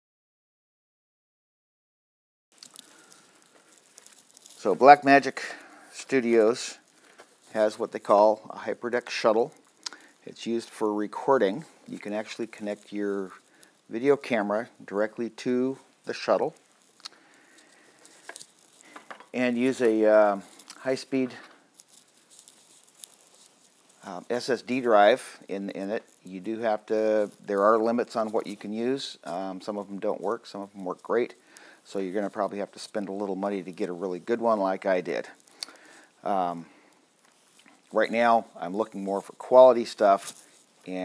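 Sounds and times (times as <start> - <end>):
light rustling: 2.6 - 14.5, 15.8 - 31.4.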